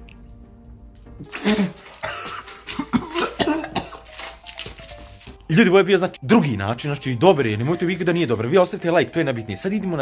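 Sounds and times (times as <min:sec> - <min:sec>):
man coughing: 0:01.3 - 0:04.1.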